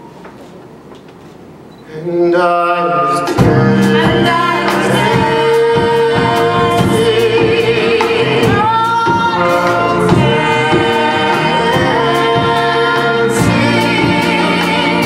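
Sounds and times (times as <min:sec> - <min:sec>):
singers in harmony: 0:02.2 - 0:15.0
band with drums and keyboard: 0:03.2 - 0:15.0.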